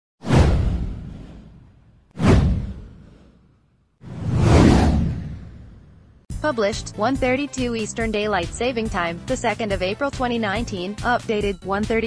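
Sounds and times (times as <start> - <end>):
whoosh sound effect: 0.2 - 6.0
deep low rumble: 4.1 - 6.2.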